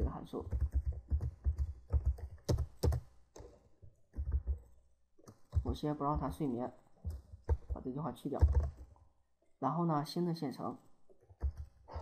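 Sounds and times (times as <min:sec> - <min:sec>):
computer keyboard keystrokes: 0:00.5 - 0:04.6, 0:08.4 - 0:08.9, 0:11.4 - 0:11.8.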